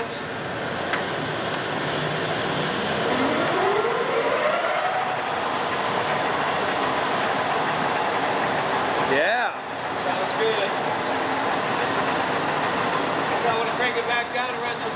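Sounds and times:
lathe running: 0:00.5 - 0:14.9.

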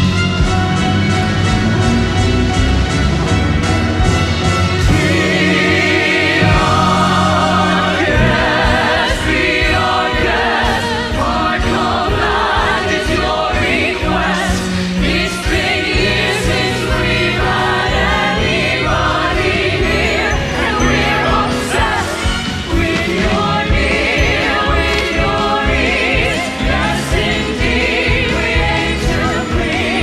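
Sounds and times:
instrumental accompaniment: 0:00.0 - 0:30.0
chorus singing: 0:04.5 - 0:30.0.

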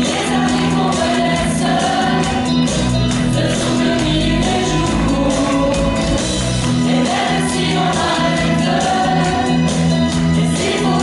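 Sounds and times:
mixed choir singing in harmony: 0:00.0 - 0:11.0.

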